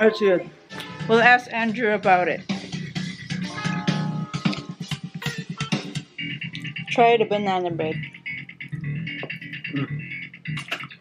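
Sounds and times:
guitar playing: 2.7 - 9.6.

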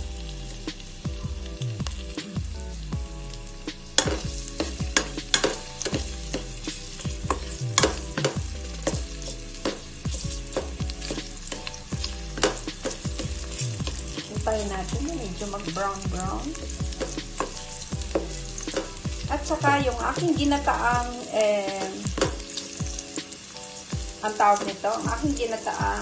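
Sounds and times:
garlic sizzling in oil: 0.0 - 26.0.

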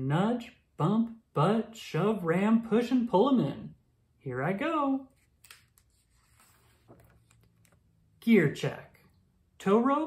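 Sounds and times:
book page turning: 5.1 - 7.8.

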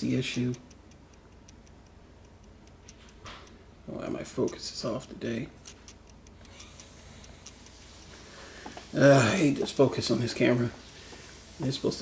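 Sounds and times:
room hum: 0.0 - 12.0
faint light ticks: 0.1 - 3.6, 4.2 - 4.8.

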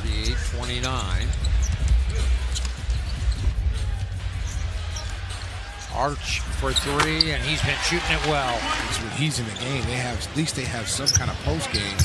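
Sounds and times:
crowd hum: 0.0 - 12.0
music with heavy bass: 0.3 - 6.7.

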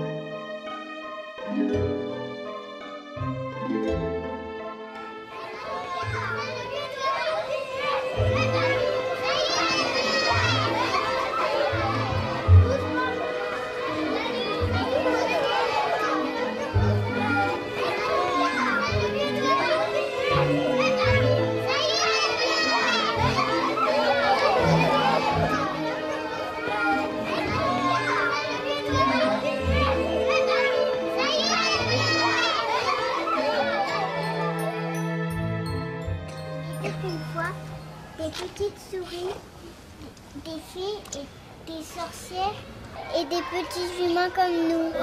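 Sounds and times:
children talking and calling out: 0.0 - 45.0.

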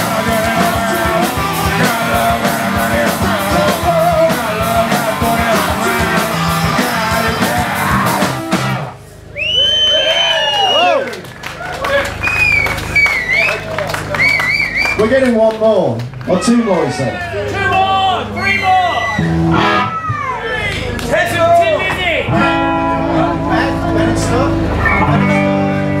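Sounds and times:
shouted vocals: 0.0 - 8.4, 16.3 - 25.3
electric guitar: 0.0 - 9.3, 19.0 - 26.0
drums: 0.0 - 15.2, 17.1 - 26.0
audience whistles and yells: 9.2 - 11.2, 11.8 - 15.2, 17.7 - 20.4.

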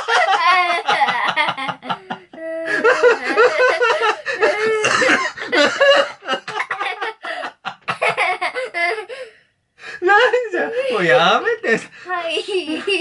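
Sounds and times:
man laughing: 0.0 - 9.0
boy laughing: 0.0 - 9.3, 12.1 - 13.0.

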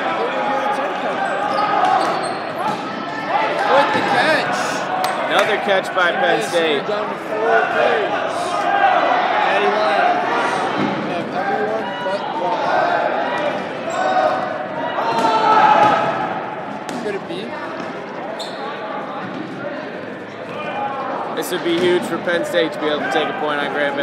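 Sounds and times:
balls bouncing on gym floor: 1.7 - 3.0.

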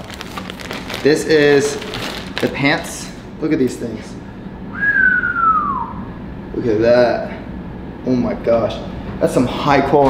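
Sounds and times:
person whistling sliding note: 4.7 - 6.1.

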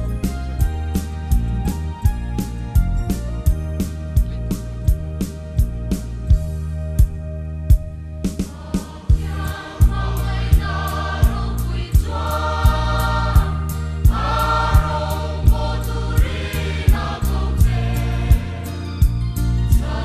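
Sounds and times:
instrumental accompaniment with bass: 0.0 - 20.0
choir singing a hymn: 8.3 - 20.0.

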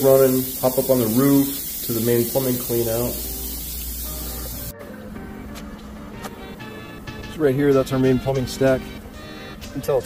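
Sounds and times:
faucet running water: 0.0 - 4.7
background music: 2.1 - 10.0.

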